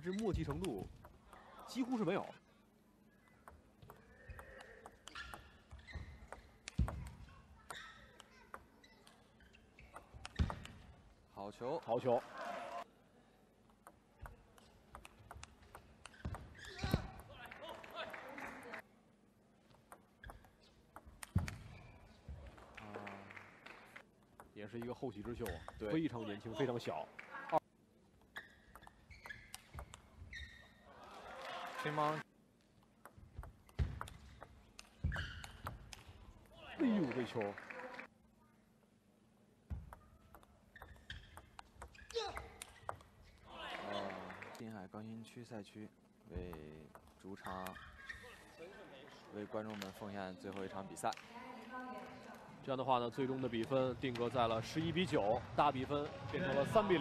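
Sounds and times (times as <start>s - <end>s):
table tennis ball clicking: 13.7s - 17.9s, 28.7s - 30.1s, 32.8s - 36.5s, 39.8s - 43.1s.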